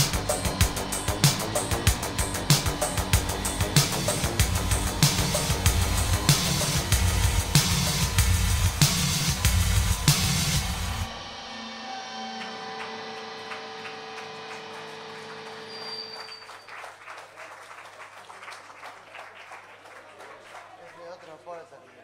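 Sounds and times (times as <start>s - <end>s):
guitars and keyboard ringing: 0.0s - 6.7s, 11.0s - 16.6s
band final hit: 0.0s - 16.3s.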